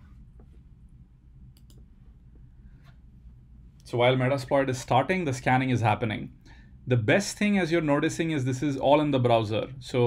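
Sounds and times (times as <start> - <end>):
low steady hum: 0.0 - 10.0
computer clicks: 1.5 - 1.9.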